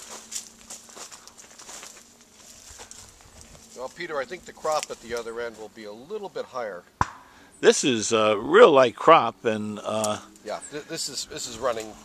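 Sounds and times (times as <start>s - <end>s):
footsteps on dry ground: 0.0s - 5.9s
rustling: 0.0s - 6.1s.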